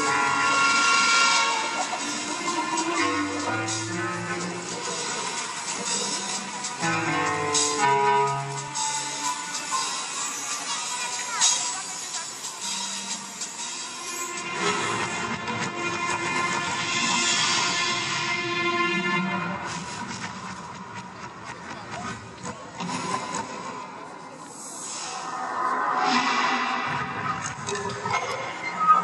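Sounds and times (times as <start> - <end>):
light show soundtrack music: 0.0 - 29.0.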